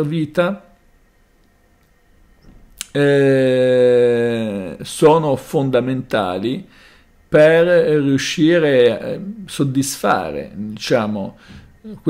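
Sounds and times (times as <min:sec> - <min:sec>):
mouth click: 0:02.4 - 0:03.0
man breathing in: 0:06.7 - 0:07.2, 0:11.4 - 0:11.8.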